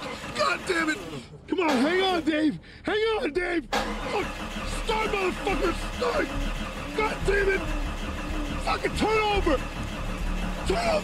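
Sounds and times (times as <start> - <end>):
car engine starting and running: 0.0 - 11.0.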